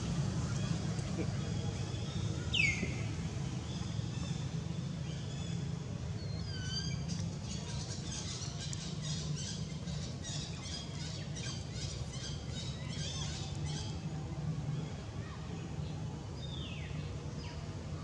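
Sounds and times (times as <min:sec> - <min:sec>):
birds chirping: 0:00.0 - 0:14.0
steady low hum: 0:00.0 - 0:18.0.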